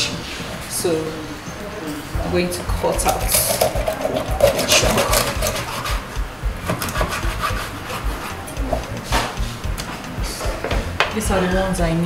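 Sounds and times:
knife cutting fish on board: 3.0s - 9.3s.

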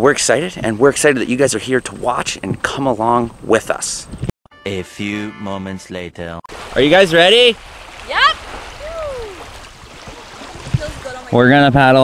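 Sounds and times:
small waves lapping on sand: 6.5s - 11.4s
wind rumble on microphone: 8.6s - 11.4s.

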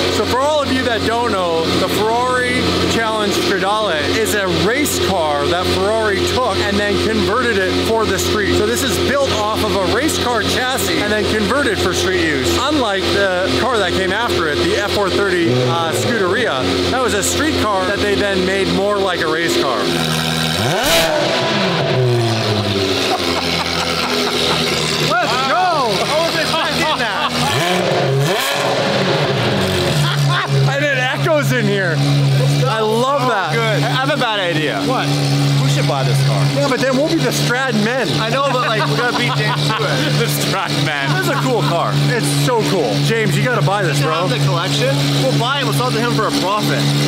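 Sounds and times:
man talking: 0.0s - 20.0s, 23.8s - 27.8s, 30.2s - 47.0s
car engine revving and idling: 0.0s - 47.0s.

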